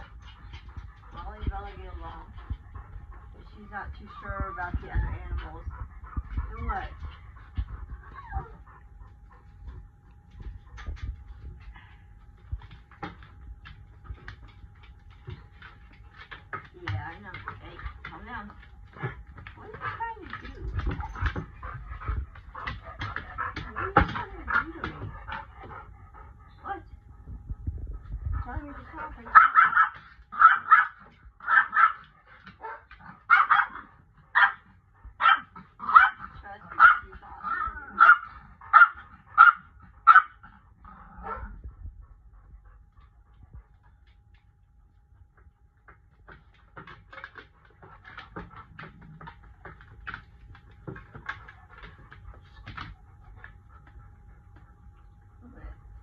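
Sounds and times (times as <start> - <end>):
dog movement sounds: 0.0 - 41.8, 42.9 - 55.7
dog barking: 29.3 - 32.0, 32.6 - 34.6, 35.2 - 36.2, 36.8 - 40.4.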